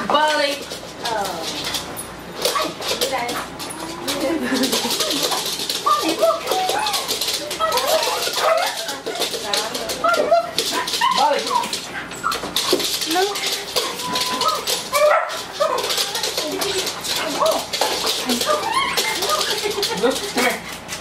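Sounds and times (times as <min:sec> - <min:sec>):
dogs whining and yipping: 0:04.9 - 0:09.4, 0:10.0 - 0:12.8, 0:13.7 - 0:16.0, 0:17.2 - 0:19.9.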